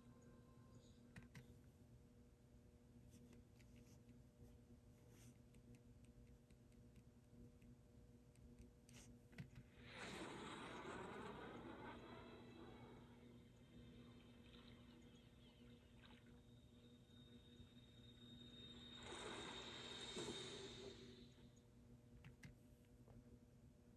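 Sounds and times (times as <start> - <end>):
faint steady hum: 0.0 - 23.9.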